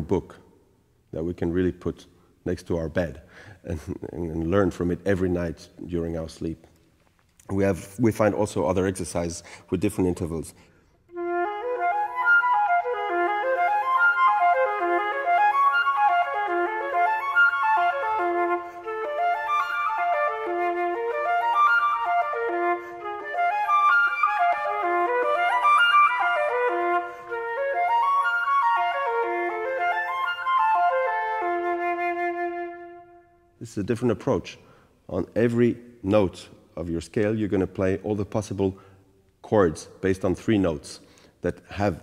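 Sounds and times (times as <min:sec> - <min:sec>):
flute arpeggio runs: 0:11.1 - 0:22.6, 0:23.2 - 0:33.2.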